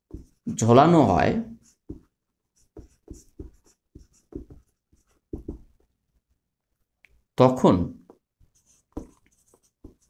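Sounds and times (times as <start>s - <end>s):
marker pen writing on whiteboard: 0.0s - 6.0s, 8.0s - 10.0s.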